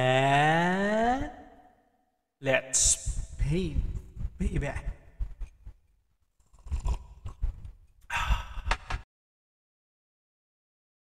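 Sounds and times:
man swallowing coffee: 6.4s - 8.9s
man sighing: 8.0s - 9.0s.

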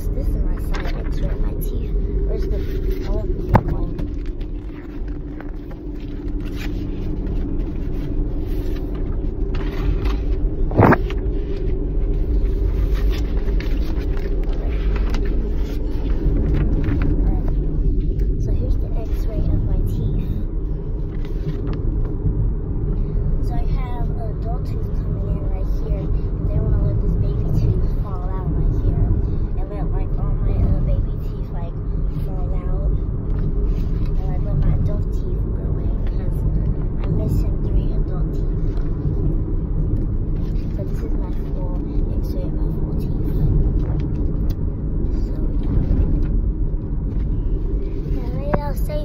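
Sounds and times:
car road and engine rumble: 0.0s - 49.0s.

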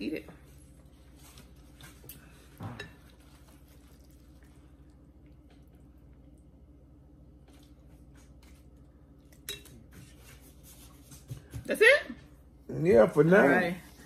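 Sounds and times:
low steady hum: 0.0s - 14.0s.

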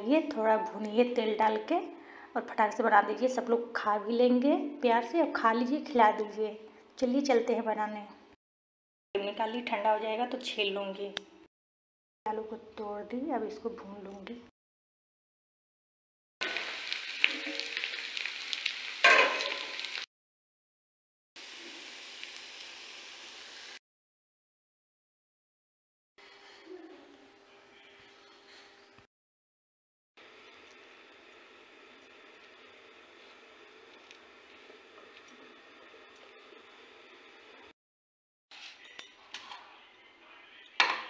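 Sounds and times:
hot oil sizzling and crackling: 16.4s - 20.1s, 21.4s - 23.8s, 30.2s - 37.7s
sharp pops of frying: 16.4s - 20.1s.

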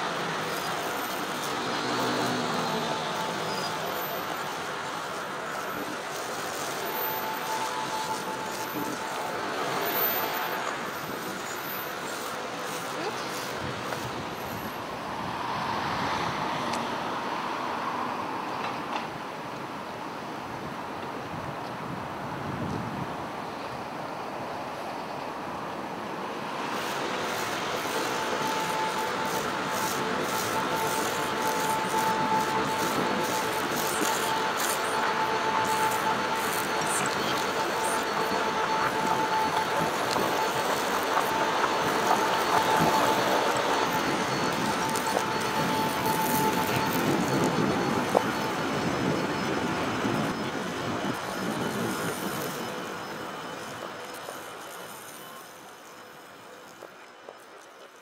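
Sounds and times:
sustained high tone: 0.0s - 15.0s, 26.6s - 56.6s
steady wash of noise: 19.1s - 56.7s.

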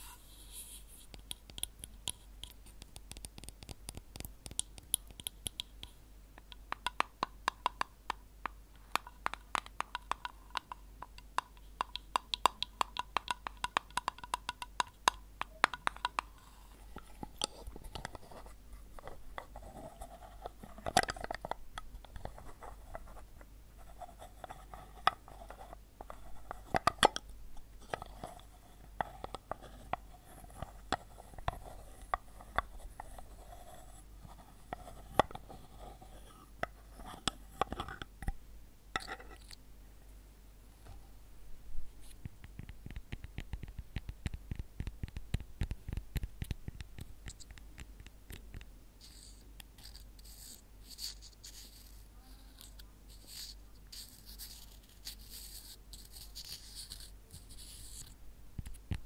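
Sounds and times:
light scratching: 0.0s - 2.8s, 15.8s - 27.1s, 49.0s - 58.2s
object tapping and clicking: 1.1s - 23.2s, 24.0s - 28.4s, 42.4s - 49.3s.

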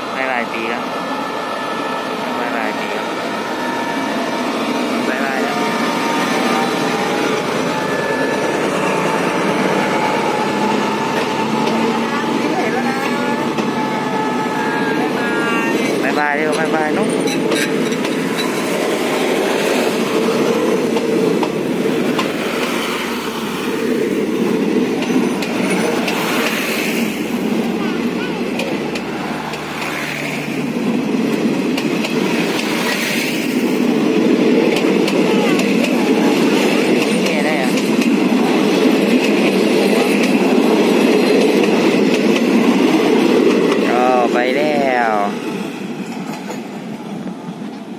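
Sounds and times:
train wheels rumbling on track: 0.0s - 47.9s.

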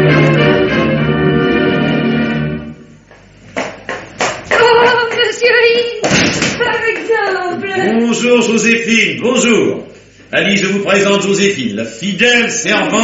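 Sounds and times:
organ music: 0.0s - 3.5s
voices: 4.5s - 13.0s.

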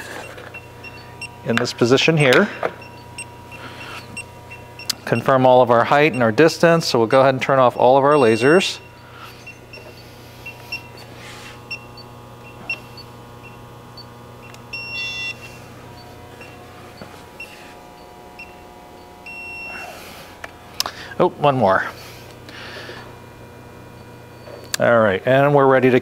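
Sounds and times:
low electrical hum: 0.0s - 26.0s
short electronic beeps: 7.8s - 11.1s.

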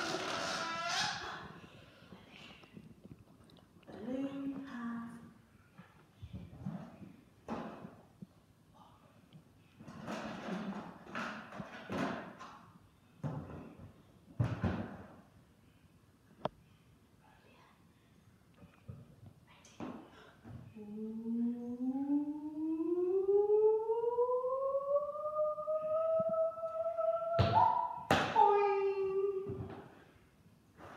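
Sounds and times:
woman singing rising note: 20.8s - 29.5s.

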